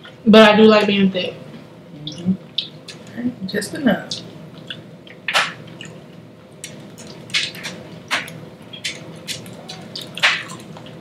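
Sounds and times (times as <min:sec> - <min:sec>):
people chewing and lip smacking: 0:02.0 - 0:03.2, 0:04.1 - 0:11.0.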